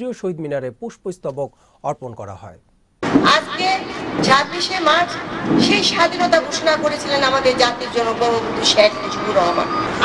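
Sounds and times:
woman speaking into a microphone: 0:03.2 - 0:10.0.

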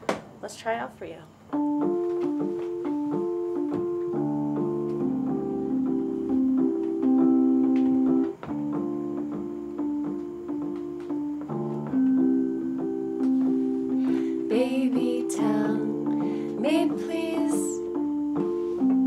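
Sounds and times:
low held keyboard chords: 0:01.4 - 0:19.0.

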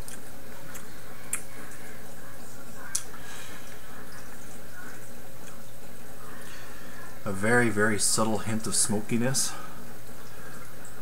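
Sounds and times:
water trickling from filter: 0:00.1 - 0:11.0.

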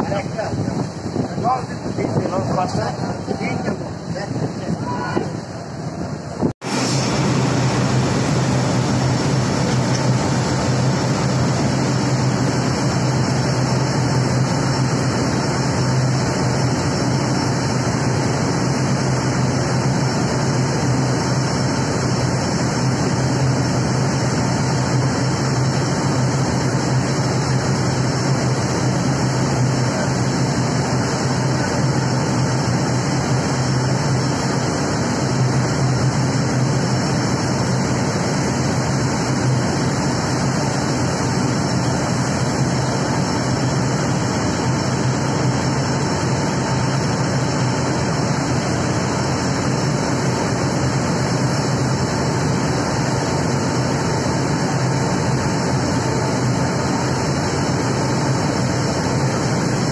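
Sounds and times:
boat engine drone: 0:00.0 - 0:59.9
churned water rushing: 0:00.0 - 0:59.9
wind: 0:00.0 - 0:59.9.

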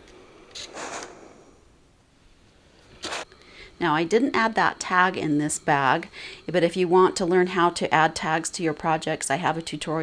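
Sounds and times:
steam iron hissing: 0:00.0 - 0:01.6.

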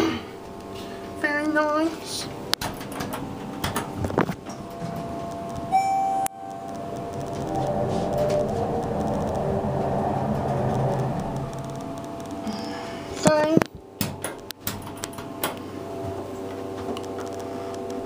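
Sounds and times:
elevator machinery and doors rumble: 0:00.0 - 0:18.0
electronic elevator chime: 0:05.7 - 0:07.1.

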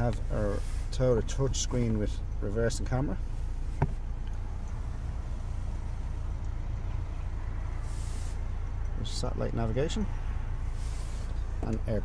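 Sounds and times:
diesel engine idling: 0:00.0 - 0:12.0
brief hiss: 0:07.8 - 0:08.4.

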